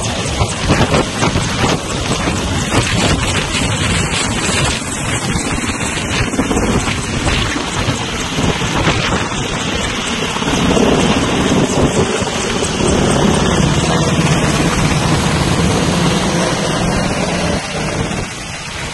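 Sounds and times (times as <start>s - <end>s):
helicopter passing overhead: 0.0s - 18.9s.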